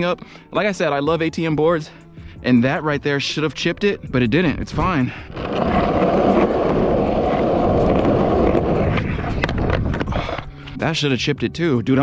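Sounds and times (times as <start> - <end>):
skateboard wheels rolling on concrete: 4.8 - 10.5.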